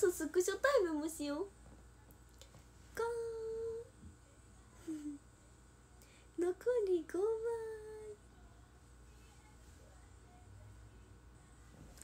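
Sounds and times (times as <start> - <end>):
woman humming: 3.0 - 5.4.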